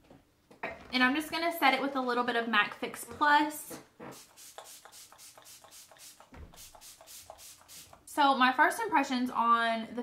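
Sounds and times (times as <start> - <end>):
spray bottle spritzes: 4.1 - 8.1.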